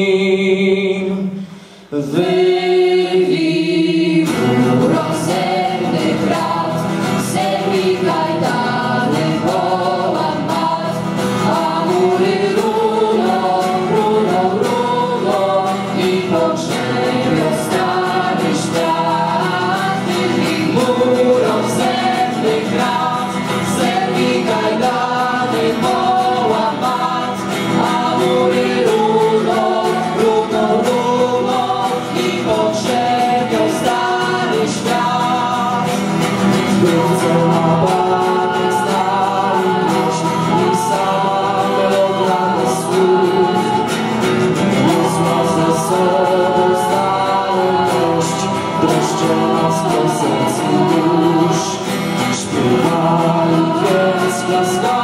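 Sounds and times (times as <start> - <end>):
acoustic guitar: 0.0 - 55.0
vocal ensemble singing: 0.0 - 55.0.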